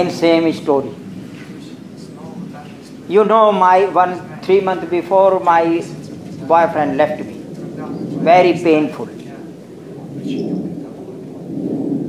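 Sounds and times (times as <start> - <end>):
low rumbling noise: 0.0 - 12.0.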